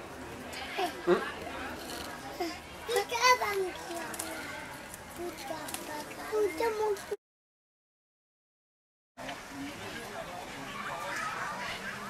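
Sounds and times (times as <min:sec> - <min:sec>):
young children talking and calling: 0:00.4 - 0:07.2, 0:10.6 - 0:12.0.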